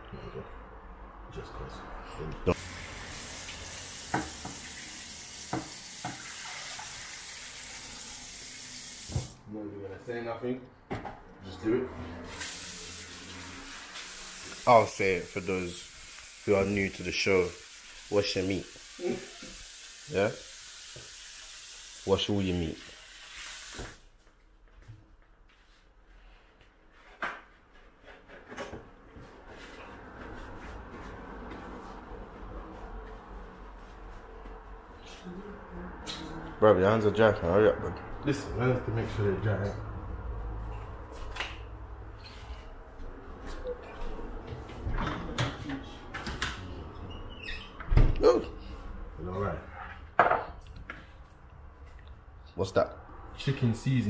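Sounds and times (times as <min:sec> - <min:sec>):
tap water running: 0:02.6 - 0:09.4, 0:12.3 - 0:24.0
tap water running into bowl: 0:02.6 - 0:09.4.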